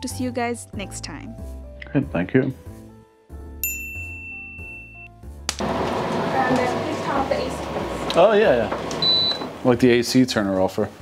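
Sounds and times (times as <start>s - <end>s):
soft background music: 0.0s - 11.0s
bell-like ding: 3.6s - 5.1s.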